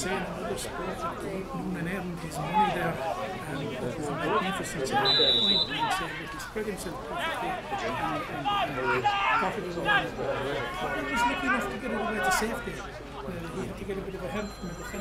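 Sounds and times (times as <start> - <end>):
people talking at once: 0.0 - 15.0.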